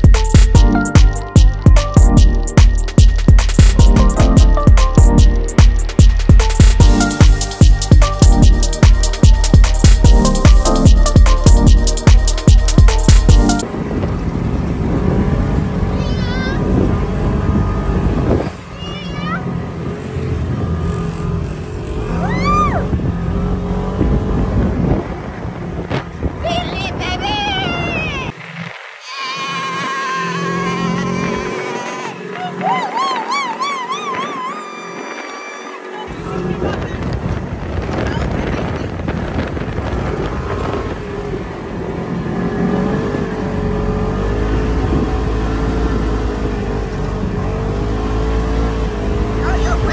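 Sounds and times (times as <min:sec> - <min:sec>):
electronic music with heavy beat: 0:00.0 - 0:13.6
high wavering squeal: 0:00.0 - 0:13.6, 0:29.0 - 0:36.1
low engine drone: 0:00.0 - 0:18.7
dune buggy engine running: 0:00.0 - 0:49.9
wind buffeting microphone: 0:13.6 - 0:28.6, 0:36.1 - 0:49.9
wind rushing: 0:36.1 - 0:43.5.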